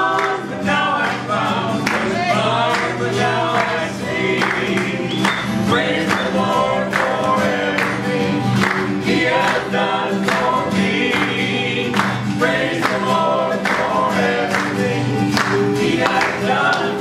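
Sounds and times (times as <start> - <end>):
hand claps: 0.0 - 17.0
man and woman singing: 0.0 - 17.0
strummed acoustic guitar: 0.0 - 17.0.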